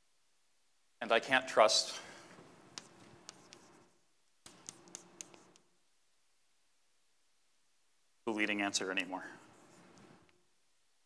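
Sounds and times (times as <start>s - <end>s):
chalk writing on a blackboard: 2.5s - 5.7s, 8.5s - 10.4s
chalk ticking on board: 2.6s - 5.7s, 9.3s - 10.4s.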